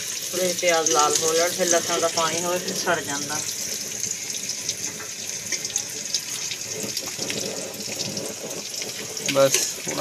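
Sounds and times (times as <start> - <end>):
onions sizzling in a pot: 0.0 - 10.0
small crackles: 3.5 - 10.0.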